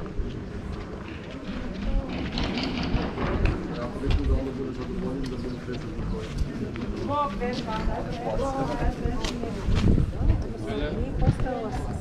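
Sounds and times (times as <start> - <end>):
people talking: 0.0 - 12.0
street noise murmur: 0.0 - 12.0.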